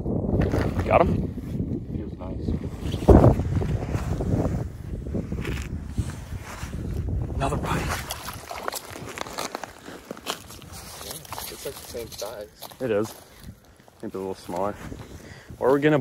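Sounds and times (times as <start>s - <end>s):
wind on microphone: 0.0s - 16.0s
snow and ice crunching: 2.9s - 15.9s.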